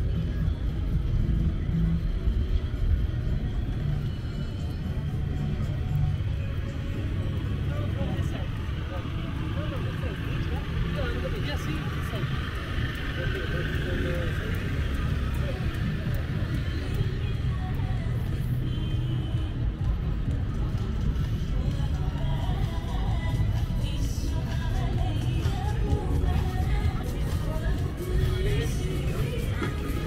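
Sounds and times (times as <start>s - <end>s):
background music: 0.0s - 30.0s
people's voices passing: 0.0s - 30.0s.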